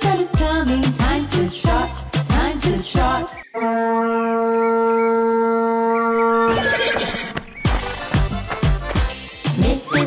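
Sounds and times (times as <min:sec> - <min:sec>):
rhythmic children's music: 0:00.0 - 0:03.4, 0:07.7 - 0:10.0.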